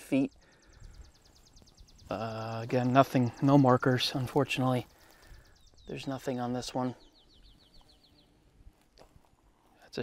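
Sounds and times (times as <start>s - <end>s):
faint bird trill: 0.0s - 9.5s.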